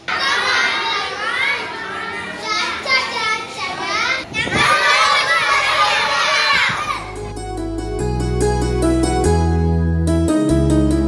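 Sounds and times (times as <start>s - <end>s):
children reciting in chorus: 0.0s - 7.1s.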